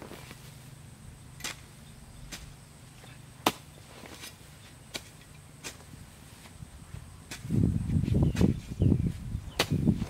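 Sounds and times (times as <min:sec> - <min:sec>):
hoe chopping into soil: 0:01.4 - 0:02.6, 0:03.4 - 0:06.6, 0:07.2 - 0:10.0.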